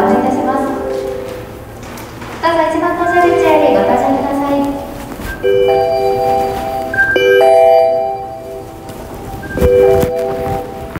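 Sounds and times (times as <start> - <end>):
electronic chime tones: 3.1 - 4.2, 5.3 - 10.9.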